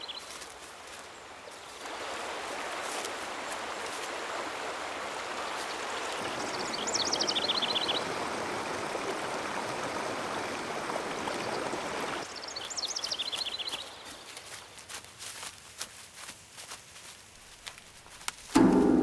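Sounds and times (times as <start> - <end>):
songbird singing: 0.0 - 1.9, 5.3 - 9.0, 9.8 - 14.9
stream water running: 0.0 - 19.0.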